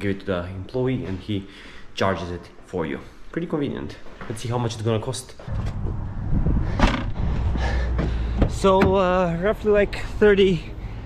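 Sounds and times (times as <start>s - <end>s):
wind buffeting microphone: 5.5s - 8.9s.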